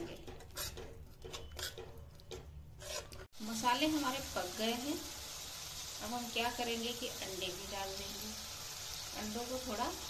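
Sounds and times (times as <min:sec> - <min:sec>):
steel spoon scraping metal pan: 0:02.8 - 0:03.3.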